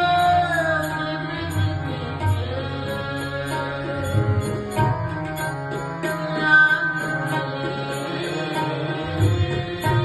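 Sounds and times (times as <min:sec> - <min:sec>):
harmonium notes: 0:00.0 - 0:10.0
low tabla strokes: 0:00.0 - 0:10.0.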